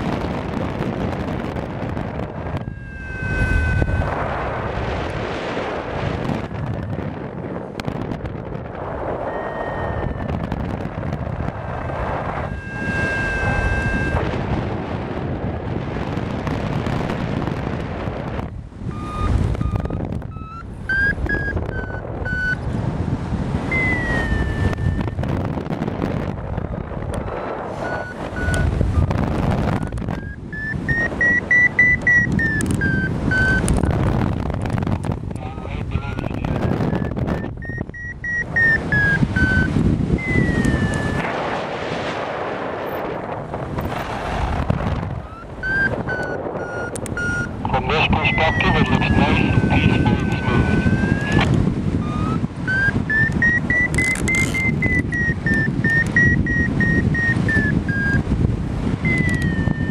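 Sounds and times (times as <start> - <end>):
wind rushing over microphone: 0.0 - 59.9
variometer electronic tone: 0.9 - 4.3, 9.2 - 14.5, 18.1 - 22.8, 23.5 - 35.2, 36.2 - 41.3, 45.2 - 58.4, 59.0 - 59.9.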